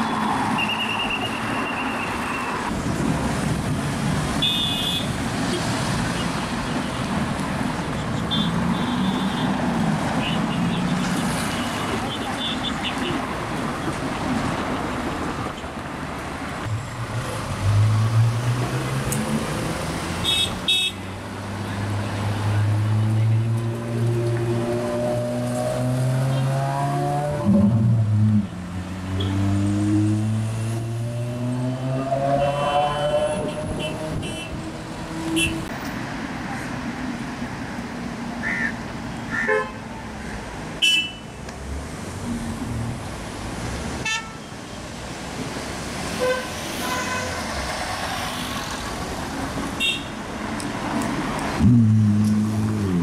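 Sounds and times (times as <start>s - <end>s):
busy street traffic: 0.0s - 53.0s.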